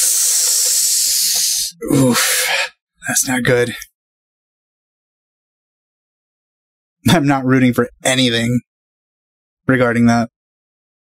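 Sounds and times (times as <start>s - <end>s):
man sighing into microphone: 1.8s - 2.7s.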